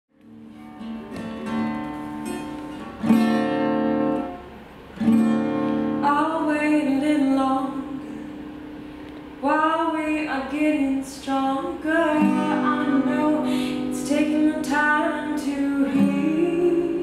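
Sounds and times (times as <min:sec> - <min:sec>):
acoustic guitar chords: 0:00.1 - 0:17.0
woman singing wordlessly: 0:06.0 - 0:08.2, 0:09.4 - 0:17.0.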